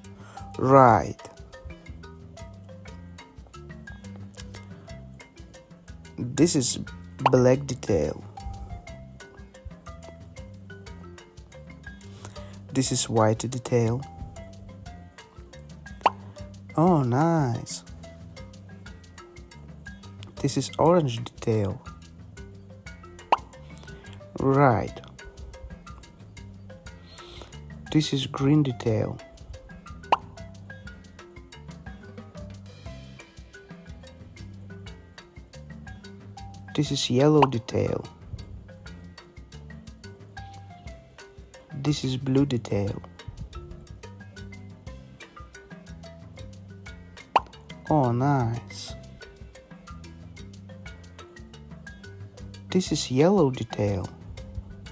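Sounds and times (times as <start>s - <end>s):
soft background music: 0.0s - 54.9s.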